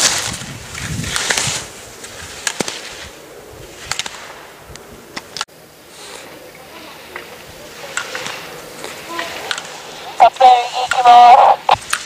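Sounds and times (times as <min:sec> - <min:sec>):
skis hissing on snow: 0:00.0 - 0:04.3, 0:05.7 - 0:11.2.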